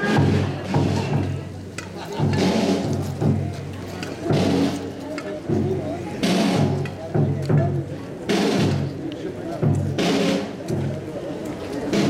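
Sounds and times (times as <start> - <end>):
crowd voices: 0.0 - 12.0
slow drum strokes: 0.0 - 12.0.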